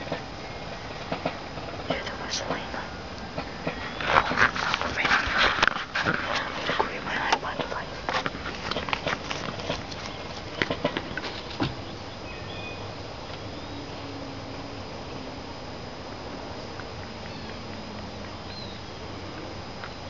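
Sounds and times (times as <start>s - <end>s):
rustling and crackling clicks: 0.0s - 11.8s
steady hiss: 0.0s - 20.0s.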